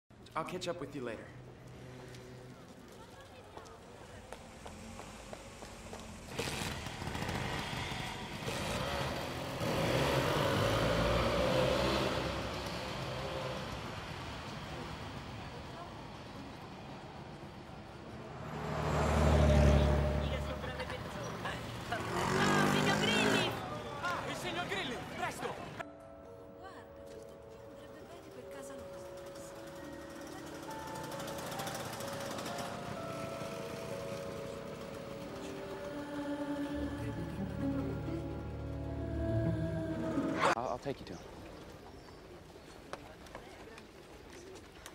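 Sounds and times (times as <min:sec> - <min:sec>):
scooter engine revving: 0:05.6 - 0:14.1, 0:18.5 - 0:23.7, 0:29.1 - 0:40.6
film score music: 0:25.8 - 0:40.6.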